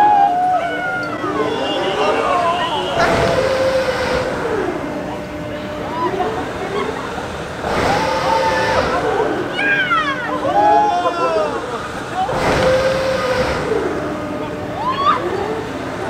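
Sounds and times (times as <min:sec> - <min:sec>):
riders screaming and yelling: 0:00.0 - 0:05.0, 0:05.8 - 0:15.8
swinging ride rushing whoosh: 0:02.9 - 0:10.6.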